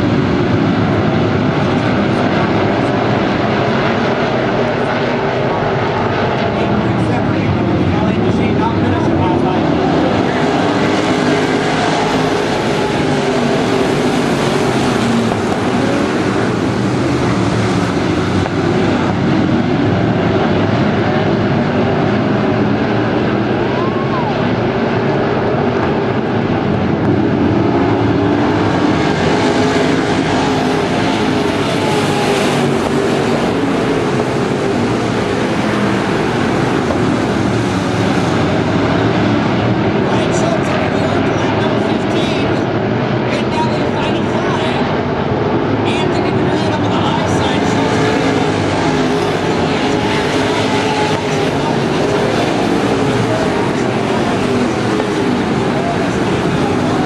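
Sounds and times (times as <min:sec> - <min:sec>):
race car engines at speed: 0:00.0 - 0:57.0.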